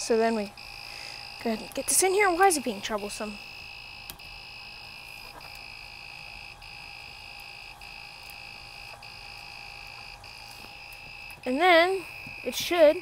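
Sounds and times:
printer buzzer beeping: 0.2 - 13.0.

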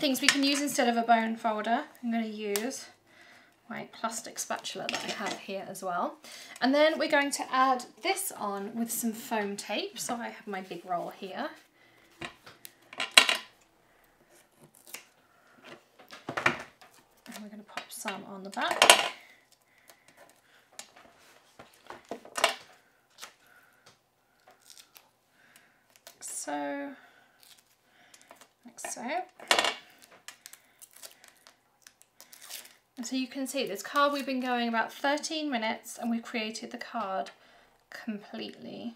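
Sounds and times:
paper crinkling: 24.3 - 26.2, 29.9 - 32.8.

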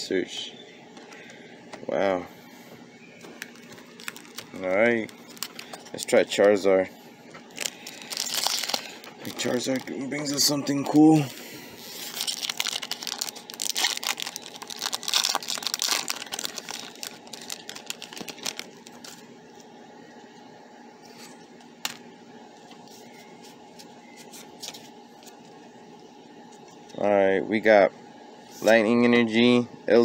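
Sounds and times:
foil wrapper crinkling and tearing: 3.2 - 6.5, 7.5 - 10.5, 11.1 - 19.2.

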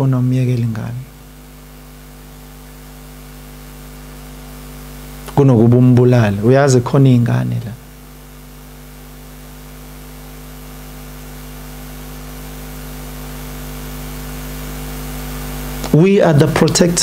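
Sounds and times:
electrical mains hum: 0.0 - 17.0.

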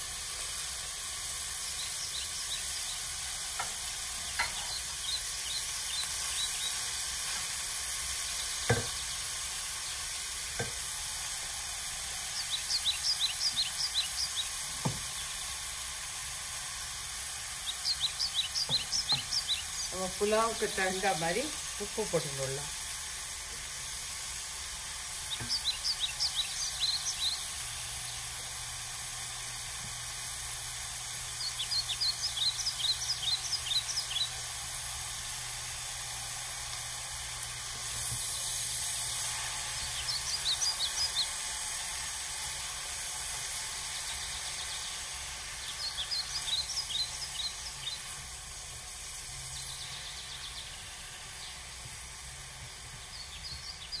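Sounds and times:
vegetables sizzling in a pan: 0.0 - 54.0
spatula scraping a pan: 4.4 - 4.8, 7.2 - 7.6
knocks on a pan: 8.7 - 9.0, 14.8 - 15.1.

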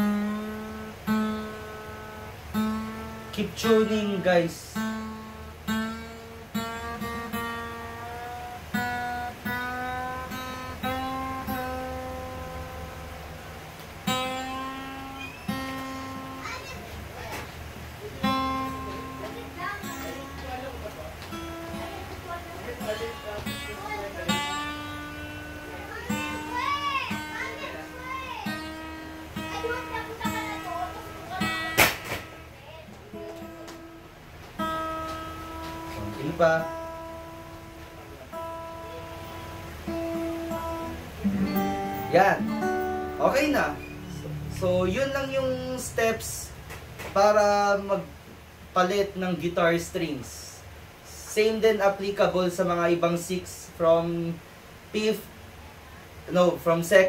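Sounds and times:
acoustic guitar string plucked: 0.0 - 47.6
child's voice: 15.7 - 17.5, 18.8 - 20.6, 23.5 - 31.8, 32.5 - 33.7.

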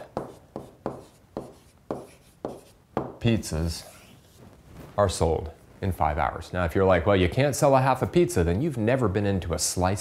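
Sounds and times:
stylus scratching on tablet: 0.0 - 3.1, 3.7 - 4.4.

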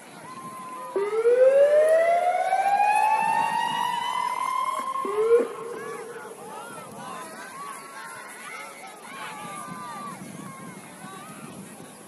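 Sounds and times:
siren wailing: 0.9 - 6.8.

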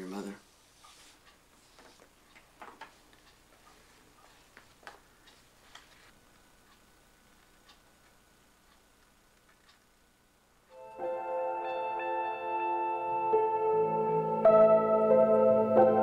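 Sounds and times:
faint clicks and taps: 0.8 - 9.9
sustained music chord: 10.7 - 16.0.

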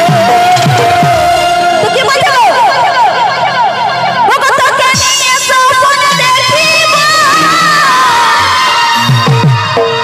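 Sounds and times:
band music: 0.0 - 10.0.

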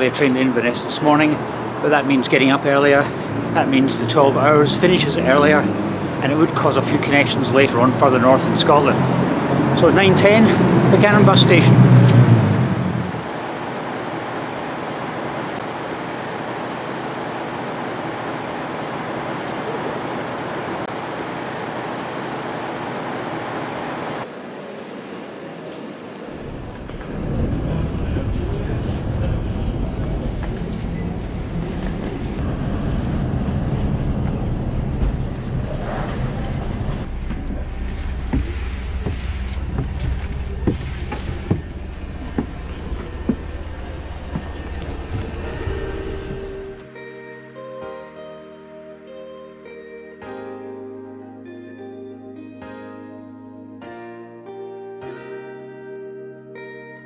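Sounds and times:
diesel coach engines rumbling: 0.0 - 24.3, 26.2 - 46.9
street traffic noise: 0.0 - 47.3.

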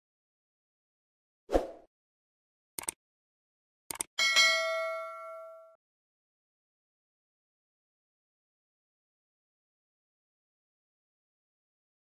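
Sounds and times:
click: 2.8 - 3.0, 3.9 - 4.1
notification bell dinging: 4.2 - 5.8.

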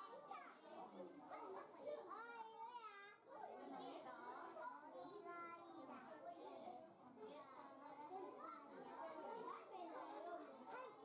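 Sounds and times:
faint chatter of voices: 0.0 - 11.0.

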